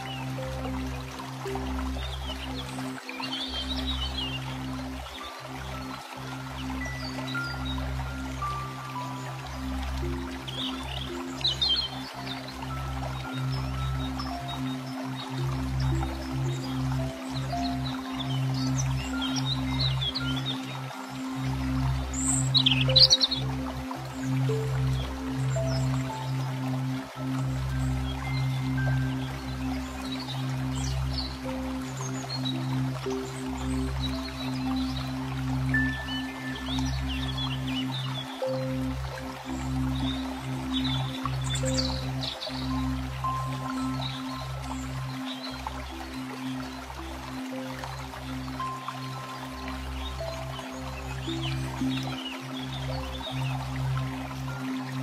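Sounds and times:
birds chirping: 0:00.0 - 0:55.0
calm new-age music: 0:00.0 - 0:55.0.

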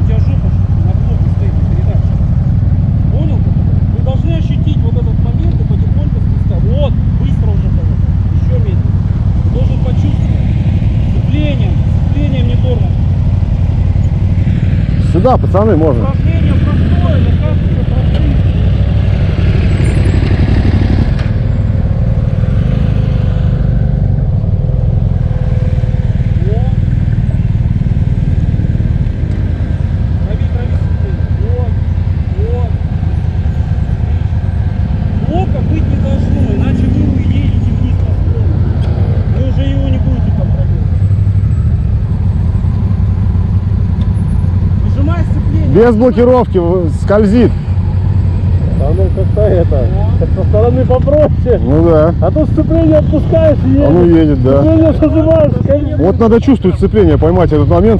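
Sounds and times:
motorcycle engines idling: 0:00.0 - 0:57.9.

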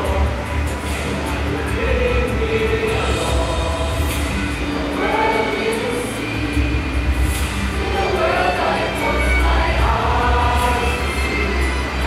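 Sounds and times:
heavy low rumble: 0:00.0 - 0:08.4
group singing held notes: 0:00.0 - 0:12.0.

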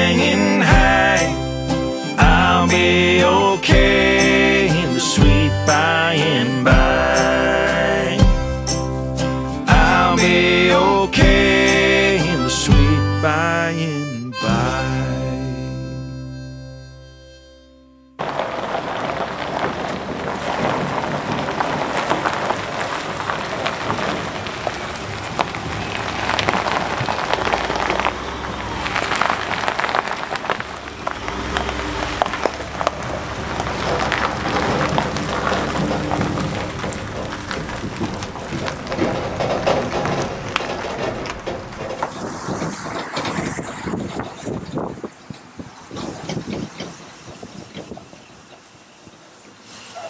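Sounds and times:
tires crunching over gravel: 0:00.0 - 0:14.7, 0:18.2 - 0:50.0
low vehicle rumble: 0:00.0 - 0:17.5, 0:18.2 - 0:50.0.

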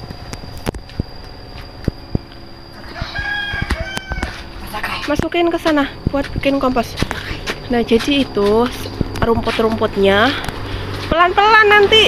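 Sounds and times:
rooster crowing: 0:02.7 - 0:04.7.

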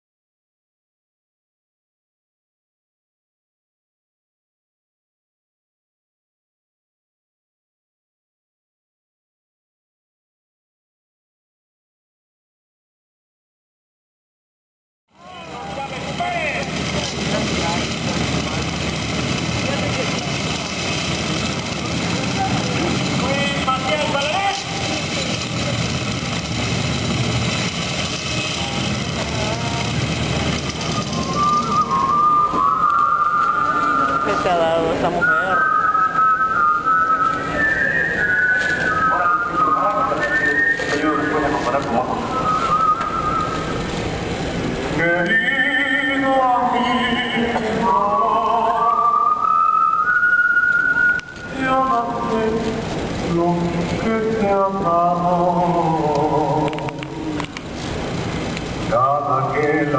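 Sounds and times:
voices: 0:15.2 - 0:43.9, 0:44.8 - 0:57.9, 0:58.5 - 0:59.9
whistled tune: 0:30.7 - 0:43.9, 0:45.0 - 0:46.3, 0:48.2 - 0:51.8.

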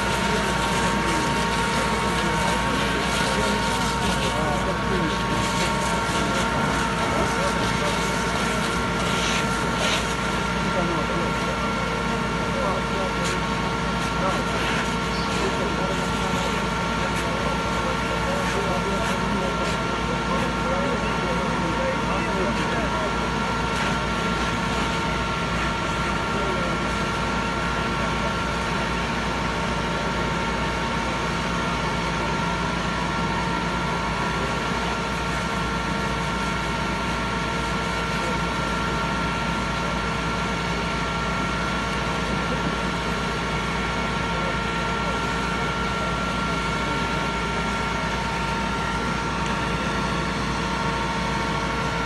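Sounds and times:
faint voices: 0:00.0 - 0:52.0
fire engine pump motor humming: 0:00.0 - 0:52.0
fire hose spraying water: 0:00.0 - 0:52.0.

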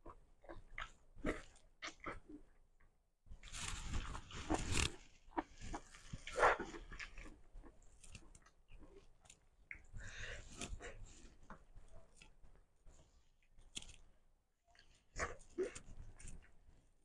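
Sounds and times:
person chewing: 0:04.4 - 0:09.9.

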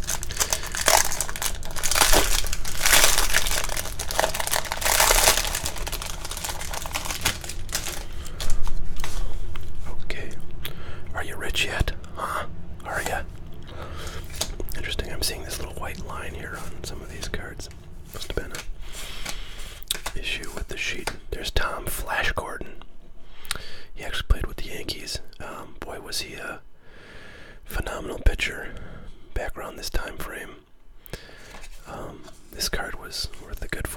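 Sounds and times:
man whispering: 0:09.9 - 0:10.5, 0:11.1 - 0:13.4, 0:14.6 - 0:18.7, 0:20.2 - 0:22.8, 0:24.0 - 0:26.7, 0:27.7 - 0:30.7, 0:31.8 - 0:33.9.

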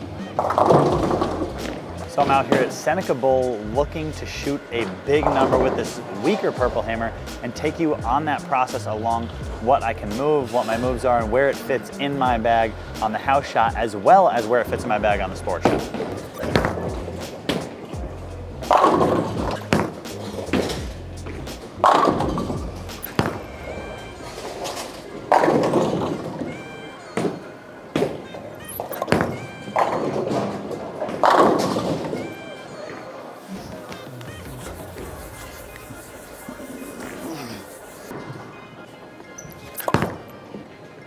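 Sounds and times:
background music: 0:00.0 - 0:41.0
bowling ball rolling on lane: 0:00.4 - 0:02.8
bowling pins crashing: 0:00.4 - 0:02.8, 0:18.7 - 0:26.6, 0:28.0 - 0:32.4.

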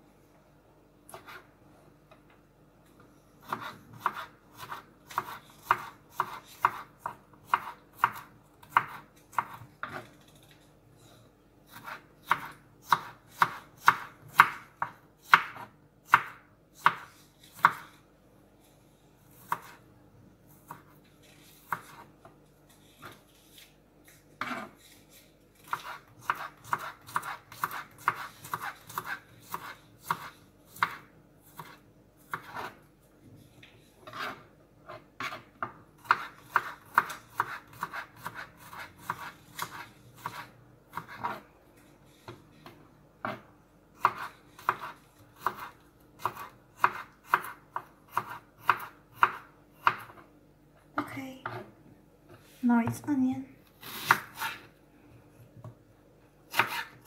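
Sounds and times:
knife chopping on wooden board: 0:03.4 - 0:10.0, 0:11.7 - 0:17.9, 0:25.7 - 0:31.0, 0:31.6 - 0:32.8, 0:34.0 - 0:41.4, 0:44.0 - 0:50.2, 0:56.5 - 0:57.0.

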